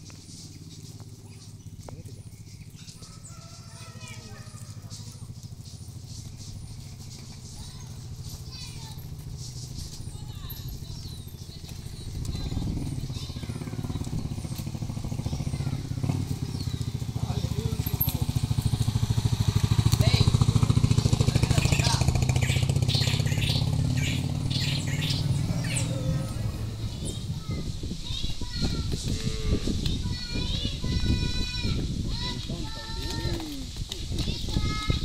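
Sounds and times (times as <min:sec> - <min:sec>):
birds chirping: 0:00.0 - 0:31.6, 0:32.2 - 0:35.0
motorcycle engine running: 0:00.0 - 0:35.0.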